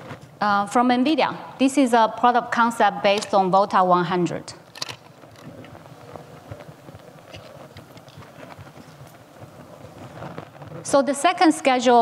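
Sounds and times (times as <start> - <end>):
low hall noise: 0.0 - 12.0.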